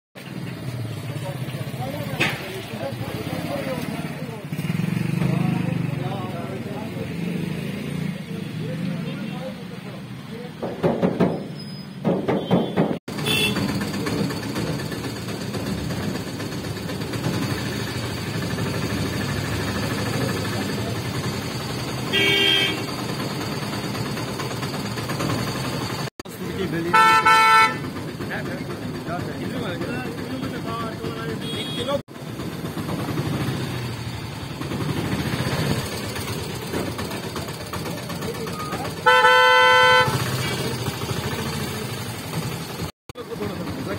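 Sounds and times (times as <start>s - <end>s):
traffic hum: 0.2s - 43.9s
people talking: 1.1s - 4.6s, 5.2s - 10.8s, 19.7s - 21.2s, 26.3s - 27.2s, 28.2s - 32.0s, 36.8s - 39.0s, 43.2s - 43.9s
vehicle horns honking: 12.3s - 13.8s, 22.0s - 23.0s, 26.9s - 27.9s, 31.3s - 32.0s, 39.0s - 41.0s.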